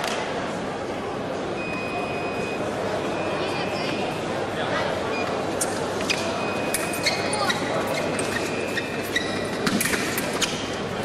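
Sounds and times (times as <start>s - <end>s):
large hall noise: 0.0s - 11.0s
shoe squeaks: 5.2s - 10.7s.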